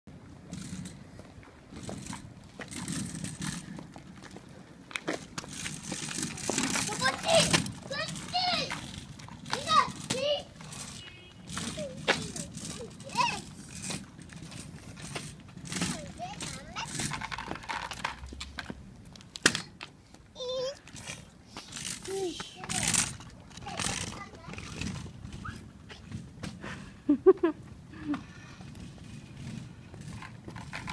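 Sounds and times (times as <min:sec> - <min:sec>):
scooter rolling on concrete: 0:00.1 - 0:30.9
young children calling and babbling: 0:06.6 - 0:13.6, 0:15.8 - 0:17.2, 0:20.3 - 0:21.3, 0:22.0 - 0:25.7
bursts of laughter: 0:27.1 - 0:28.2.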